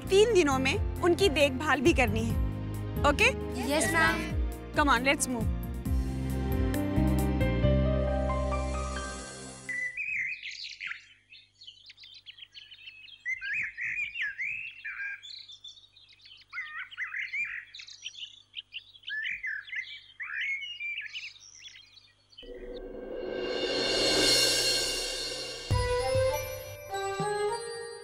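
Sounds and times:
music: 0.0 - 9.7, 22.4 - 28.0
small birds chirping: 9.7 - 22.5.

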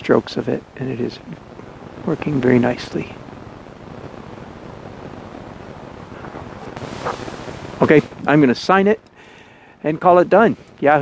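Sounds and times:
wind on microphone: 1.4 - 8.5.

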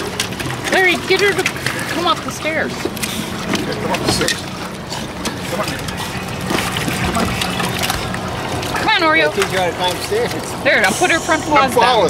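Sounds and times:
water splashing and dripping: 0.0 - 12.0.

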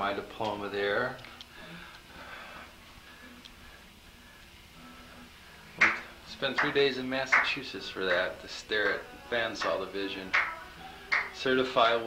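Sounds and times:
faint steady low hum: 0.0 - 12.0
man talking: 6.3 - 10.4, 11.4 - 12.0.

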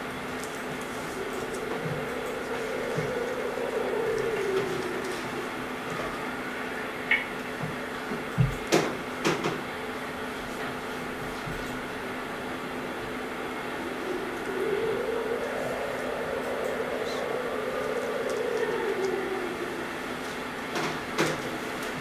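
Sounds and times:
steady low hum: 0.0 - 22.0
faint wavering tone: 0.4 - 7.3, 12.8 - 20.7.

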